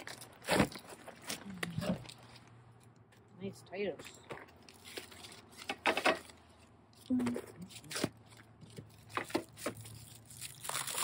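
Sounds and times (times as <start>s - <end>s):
plastic wrapping rustling: 0.0s - 2.8s, 4.0s - 11.0s.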